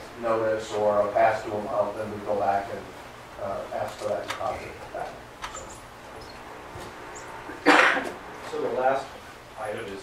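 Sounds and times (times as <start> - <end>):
room hum: 0.0 - 10.0
short cough: 7.6 - 8.2.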